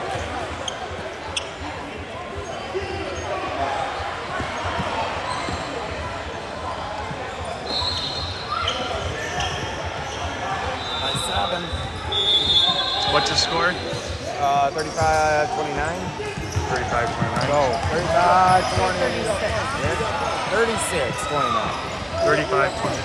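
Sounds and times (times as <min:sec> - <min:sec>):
many voices chattering: 0:00.0 - 0:23.0
basketball bouncing on floor: 0:16.4 - 0:17.6.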